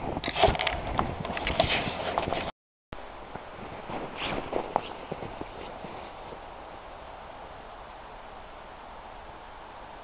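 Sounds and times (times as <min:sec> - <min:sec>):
steady background hiss: 0:03.0 - 0:10.0
footsteps crunching in snow: 0:03.3 - 0:06.9.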